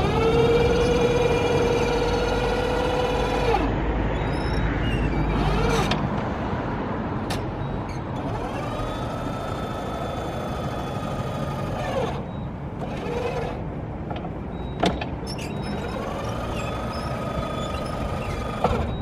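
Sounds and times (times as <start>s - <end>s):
electric lift motor whining: 0.0s - 6.0s, 8.0s - 13.7s, 14.6s - 19.0s.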